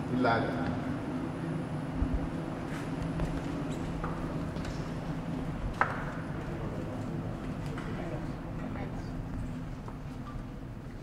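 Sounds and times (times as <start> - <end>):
low machinery hum: 0.0 - 11.0.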